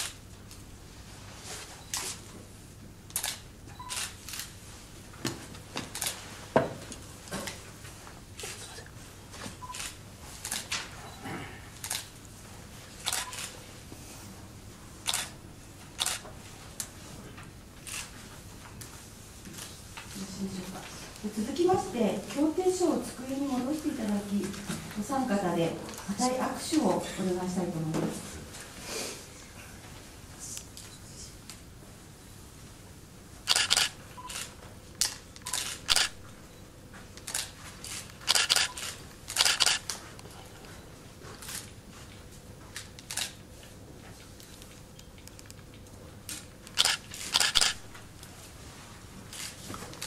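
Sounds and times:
camera shutter clicks: 3.1s - 4.5s, 11.8s - 12.1s, 13.0s - 13.6s, 15.0s - 15.3s, 16.0s - 16.2s, 33.5s - 36.2s, 37.2s - 39.9s, 46.7s - 47.9s.

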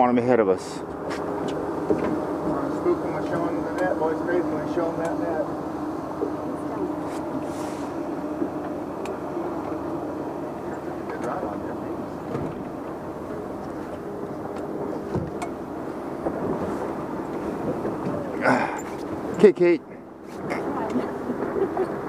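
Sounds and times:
boat engine humming: 0.0s - 22.0s.

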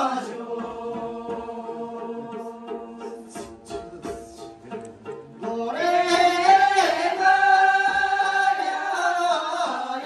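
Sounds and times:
women singing together: 0.0s - 3.5s, 5.5s - 10.0s
faint plucked lute: 0.1s - 8.7s.

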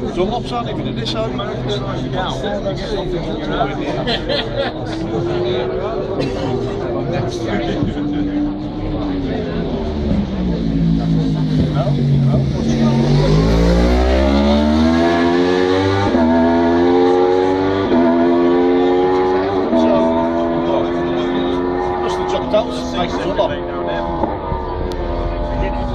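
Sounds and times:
racing motorcycle engine accelerating: 7.8s - 25.9s.

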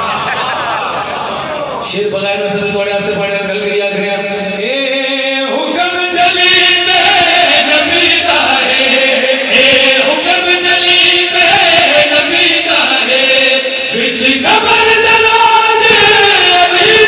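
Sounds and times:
men singing through a microphone: 4.5s - 17.0s.

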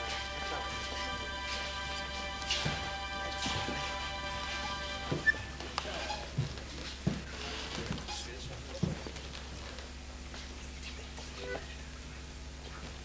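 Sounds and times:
accordion chord: 0.0s - 6.0s
dancers' feet on floor: 0.0s - 10.6s.

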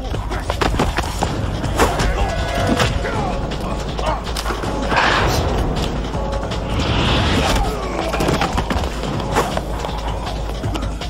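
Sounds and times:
background music score: 0.0s - 11.0s.

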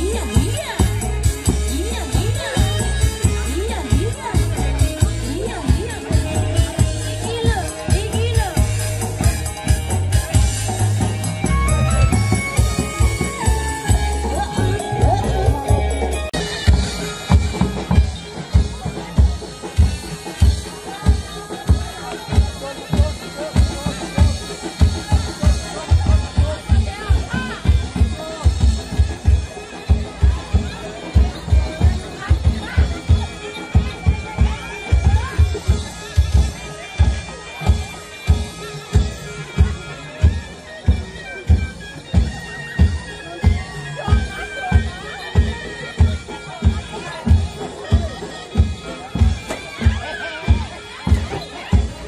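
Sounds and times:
low drum beat: 0.0s - 52.0s
reedy shawm melody: 0.0s - 52.0s.

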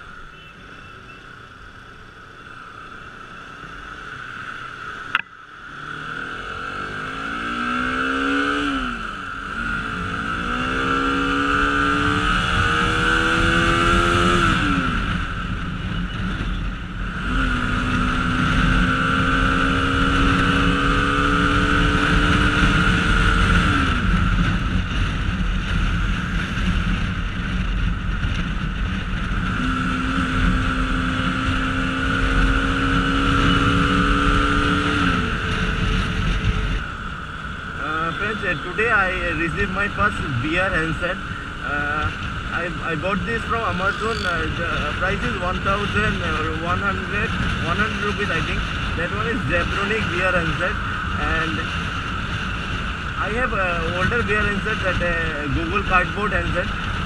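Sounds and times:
motorcycle engine accelerating: 2.9s - 57.0s.

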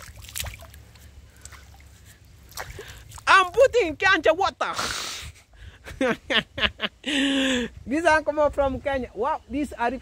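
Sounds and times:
water splashing and dripping: 0.0s - 3.9s
steady low rumble: 0.0s - 4.2s.

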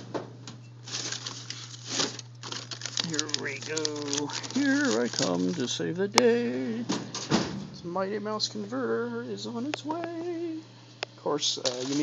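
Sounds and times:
steady low hum: 0.0s - 12.0s
hand rummaging among cables: 0.9s - 5.8s, 11.6s - 12.0s.

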